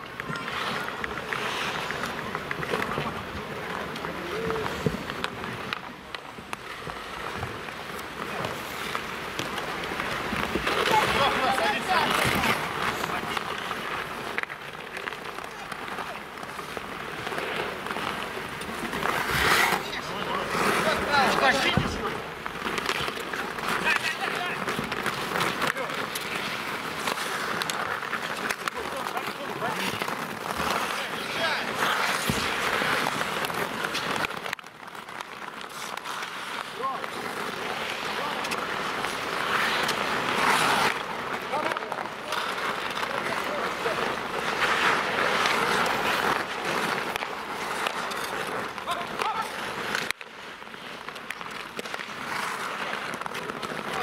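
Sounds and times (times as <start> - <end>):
skates scraping on ice: 0.0 - 54.0.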